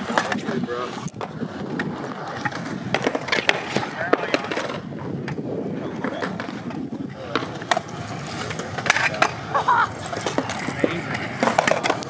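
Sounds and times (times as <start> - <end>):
scooter clacking on concrete: 0.0 - 12.0
scooter wheels rolling on concrete: 0.0 - 12.0.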